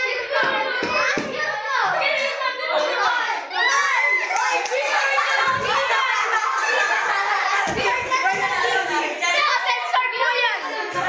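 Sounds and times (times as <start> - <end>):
children talking and calling out: 0.0 - 11.0.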